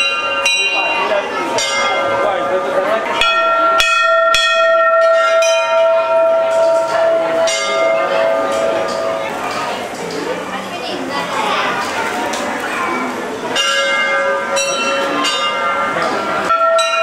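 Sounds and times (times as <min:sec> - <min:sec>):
temple bells ringing: 0:00.0 - 0:10.5, 0:13.4 - 0:17.0
crowd murmuring: 0:00.0 - 0:17.0.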